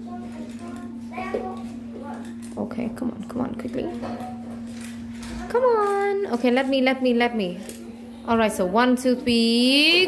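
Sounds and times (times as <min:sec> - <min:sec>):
children talking quietly: 0:00.0 - 0:10.0
steady hum: 0:00.0 - 0:10.0.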